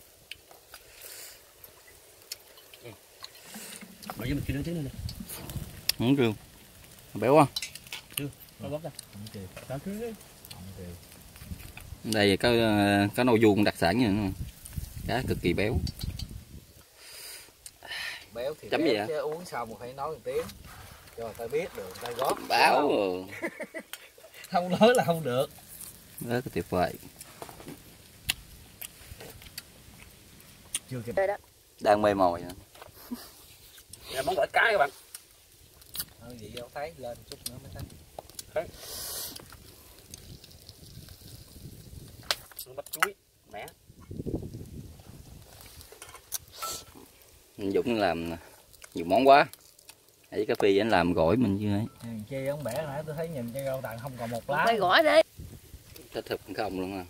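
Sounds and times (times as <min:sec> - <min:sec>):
fish grilling ticks and crackles: 0:00.0 - 0:57.0
soft hiss: 0:00.0 - 0:57.0.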